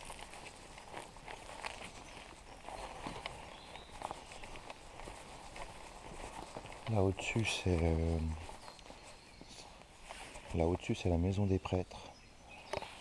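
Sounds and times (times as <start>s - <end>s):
footsteps on wet pavement: 0.0s - 11.0s.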